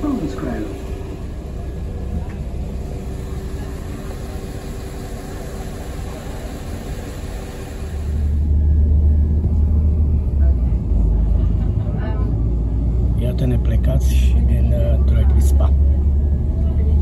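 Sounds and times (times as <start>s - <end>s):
train cabin hum: 0.0s - 13.6s
train low rumble: 0.0s - 17.0s.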